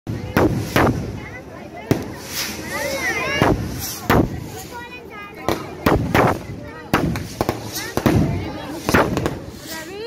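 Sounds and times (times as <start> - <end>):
fireworks bangs: 0.1 - 10.0.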